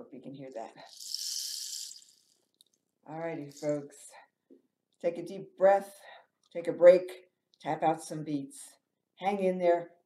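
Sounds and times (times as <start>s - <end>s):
rain stick pellets trickling: 0.8s - 2.7s, 3.4s - 3.9s.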